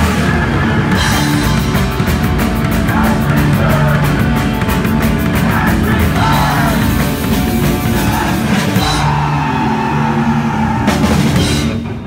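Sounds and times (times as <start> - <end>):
punk band distorted chord ringing: 0.0 - 12.0.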